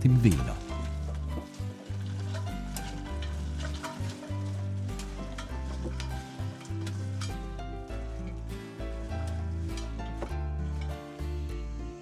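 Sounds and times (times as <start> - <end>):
grapes being crushed clicking: 0.0 - 11.0
background music with bass notes: 0.0 - 12.0.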